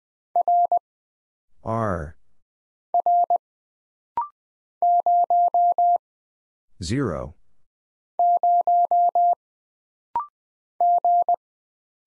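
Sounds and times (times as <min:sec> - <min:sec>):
morse code beeps: 0:00.4 - 0:00.8, 0:03.0 - 0:03.4, 0:04.2 - 0:06.0, 0:08.2 - 0:09.4, 0:10.2 - 0:11.4.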